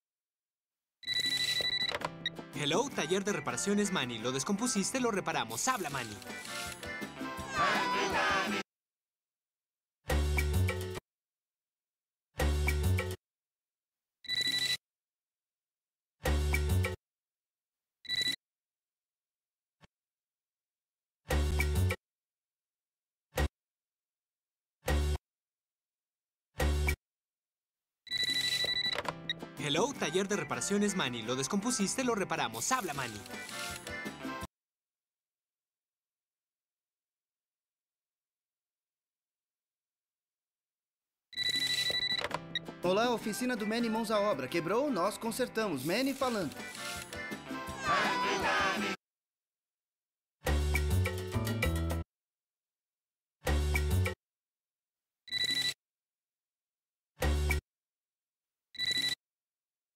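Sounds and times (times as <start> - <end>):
cartoon telephone ringing: 1.0 - 2.0, 14.2 - 14.8, 28.1 - 29.0, 41.4 - 42.3, 55.3 - 55.8, 58.8 - 59.2
light background music: 2.2 - 7.6, 29.3 - 34.5, 42.5 - 49.0.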